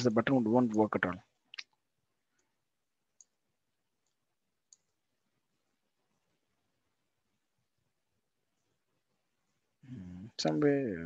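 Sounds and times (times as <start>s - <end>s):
keyboard and mouse clicks: 3.1s - 3.4s, 4.0s - 5.0s, 10.4s - 10.7s.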